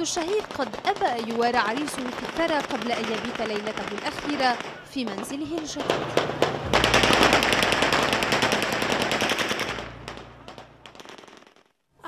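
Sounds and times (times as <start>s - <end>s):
crowd noise: 0.0s - 9.2s
automatic gunfire: 0.4s - 4.9s, 5.8s - 11.7s.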